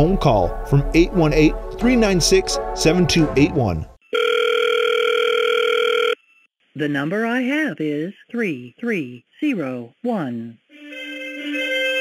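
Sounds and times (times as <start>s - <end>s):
telephone line tone: 4.1s - 6.3s.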